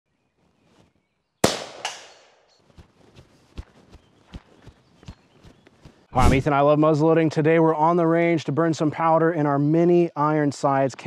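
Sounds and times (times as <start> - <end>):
footsteps in grass: 0.2 - 1.2, 2.4 - 6.5.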